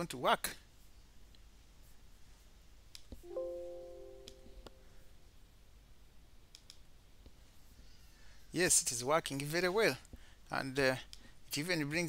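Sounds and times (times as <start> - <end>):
multi-tone chime: 3.3 - 4.9
computer mouse clicks: 6.5 - 6.8.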